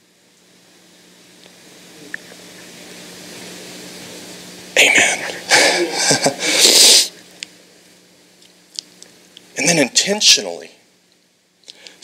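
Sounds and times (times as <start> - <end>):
low electrical hum: 0.0 - 12.0
room tone hiss: 0.0 - 12.0.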